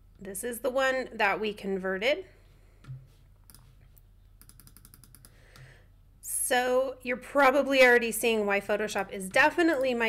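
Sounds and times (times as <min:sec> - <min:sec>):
rapid computer clicks: 0:04.4 - 0:05.4.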